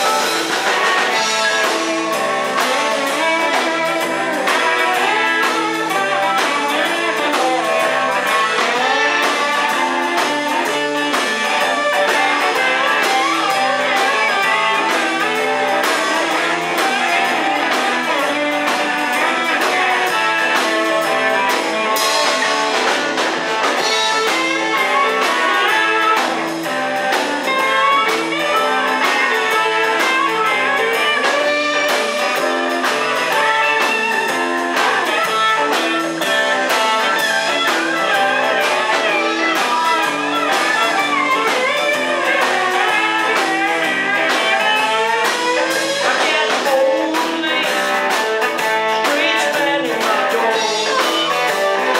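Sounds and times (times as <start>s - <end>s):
drum kit: 0.0s - 51.9s
electric guitars: 0.0s - 51.9s
harmonica: 0.0s - 51.9s.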